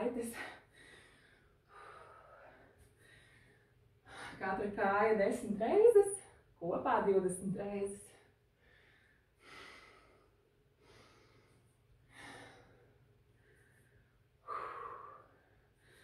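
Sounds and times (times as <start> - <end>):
woman breathing: 0.3 - 4.4, 8.0 - 16.0.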